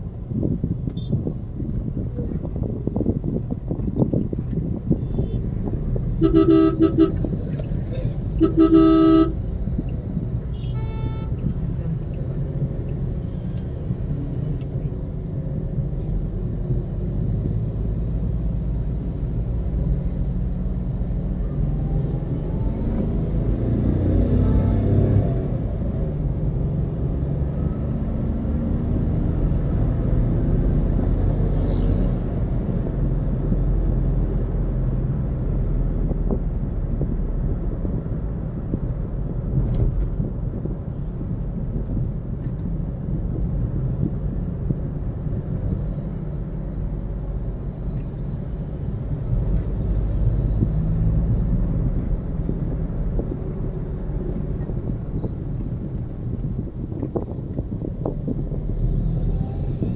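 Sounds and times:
car road and engine rumble: 0:00.0 - 0:59.9
higher-pitched horn toot: 0:06.2 - 0:07.3, 0:08.4 - 0:09.4, 0:10.5 - 0:11.4
car horn honking: 0:06.2 - 0:07.4, 0:08.4 - 0:09.4, 0:10.5 - 0:11.5.

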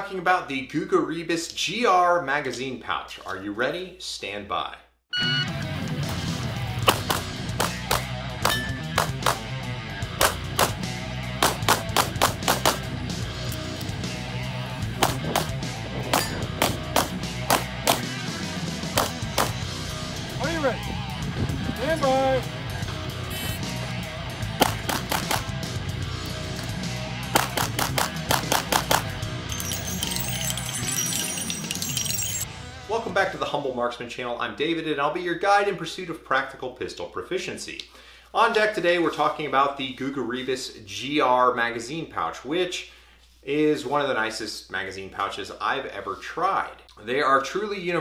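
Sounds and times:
shot timer beep: 0:05.1 - 0:05.6
rock guitar music: 0:05.2 - 0:29.9
pistol shots: 0:10.2 - 0:10.8, 0:11.4 - 0:12.9, 0:27.3 - 0:29.1.

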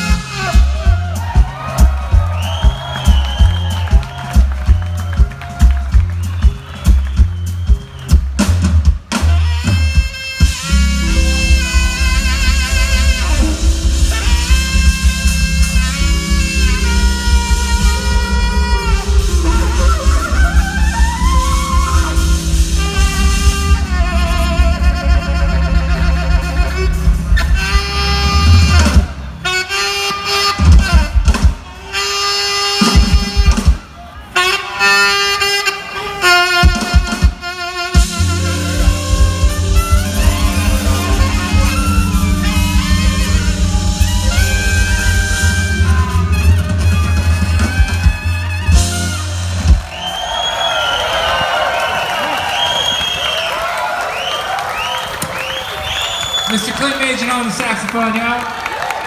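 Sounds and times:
jazz band playing: 0:00.0 - 0:56.1
crowd cheering and applauding: 0:00.1 - 0:29.2, 0:38.0 - 0:59.0
whistles from crowd: 0:02.2 - 0:05.4, 0:06.0 - 0:08.3, 0:49.6 - 0:57.4.

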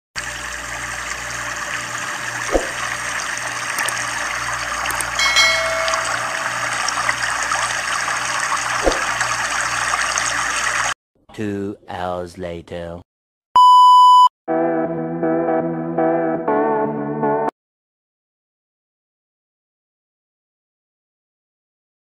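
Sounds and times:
rushing water: 0:01.8 - 0:11.0
ringing sound effect: 0:05.2 - 0:07.0.

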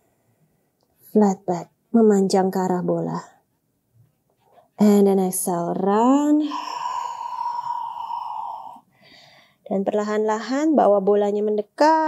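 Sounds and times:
woman exhaling through mouth: 0:06.4 - 0:08.9.

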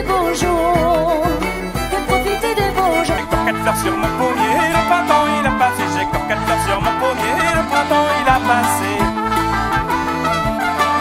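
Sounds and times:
button accordion dance music: 0:00.0 - 0:11.0
steady low drum beat: 0:00.0 - 0:11.0.

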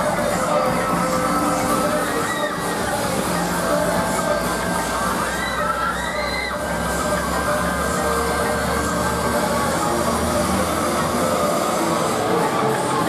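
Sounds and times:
ride mechanical rumble: 0:00.0 - 0:13.0.

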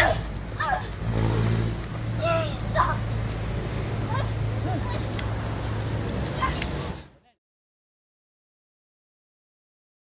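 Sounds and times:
people shouting cries: 0:02.2 - 0:03.0.

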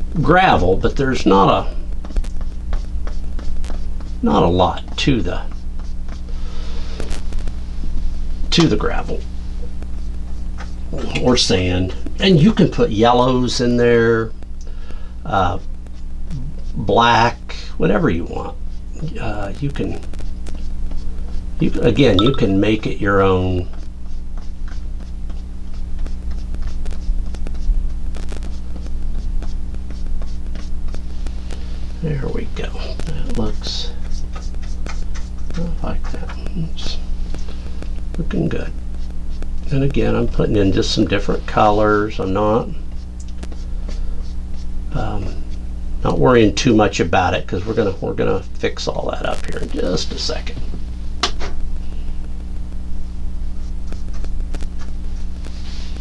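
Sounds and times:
steady low hum: 0:00.0 - 0:56.0
paintbrush dabbing on canvas: 0:00.7 - 0:12.9, 0:14.8 - 0:45.7, 0:53.4 - 0:56.0.

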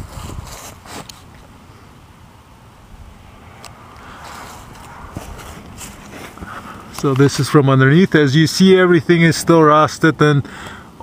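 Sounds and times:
camera handling rustle: 0:00.0 - 0:01.5.

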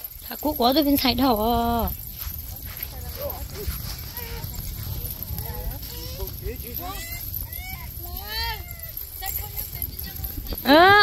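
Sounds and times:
low uneven rumble: 0:00.0 - 0:11.0
people talking and calling out: 0:00.0 - 0:11.0.

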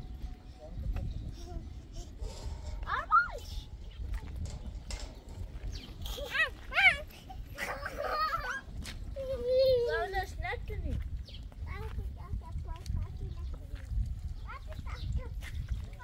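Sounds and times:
children calling and shouting: 0:00.2 - 0:16.0.

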